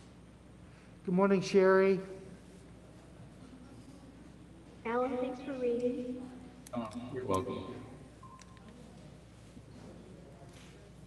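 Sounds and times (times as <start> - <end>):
faint electronic beep: 8.2 - 8.6.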